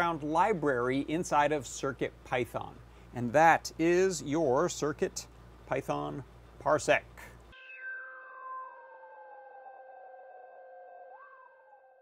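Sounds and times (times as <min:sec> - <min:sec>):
synth tone gliding downward: 0:07.6 - 0:12.0.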